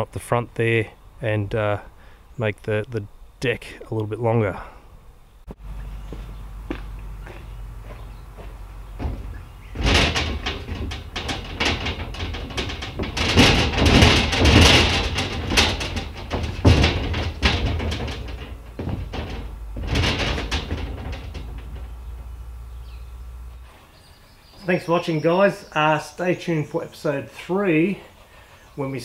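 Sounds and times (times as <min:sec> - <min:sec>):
metal sheet rattling underfoot: 0:06.8 - 0:23.8.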